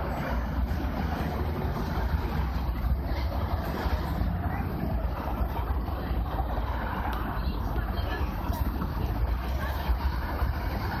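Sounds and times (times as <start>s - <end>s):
traffic noise with low rumble: 0.0s - 11.0s.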